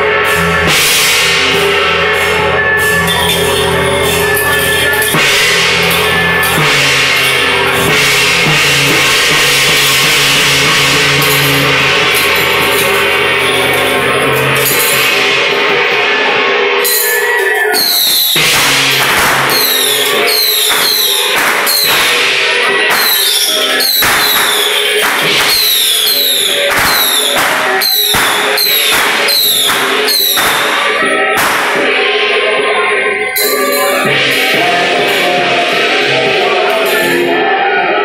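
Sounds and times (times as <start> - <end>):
cymbals and gongs crashing: 0.0 - 37.4.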